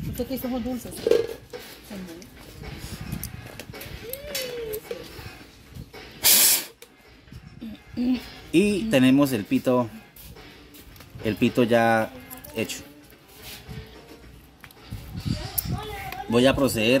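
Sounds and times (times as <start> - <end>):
short loud rushing hiss: 6.2 - 6.8.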